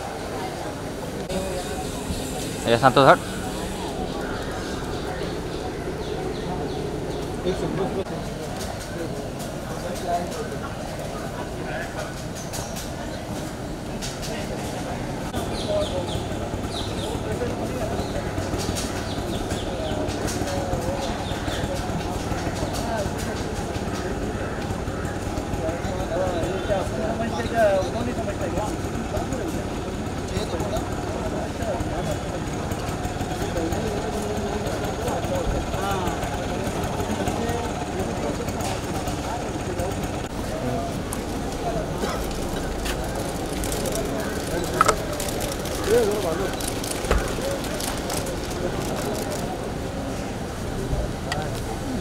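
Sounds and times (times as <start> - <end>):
steady low hum: 0.0 - 9.7
chatter of many people: 0.0 - 52.0.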